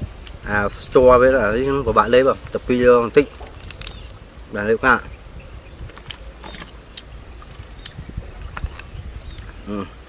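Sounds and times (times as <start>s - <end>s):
pods crunching while chewed: 3.1s - 4.3s, 5.8s - 10.0s.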